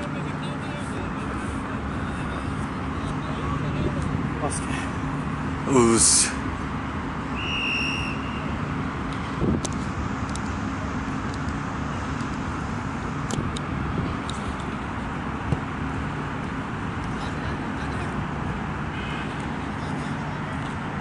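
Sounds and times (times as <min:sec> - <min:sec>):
traffic rumble and hum: 0:00.0 - 0:21.0
high whistle-like tone: 0:07.4 - 0:08.6.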